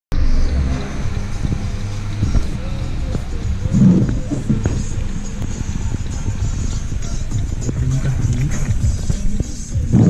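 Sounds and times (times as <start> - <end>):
music with deep bass line: 0.1 - 10.0.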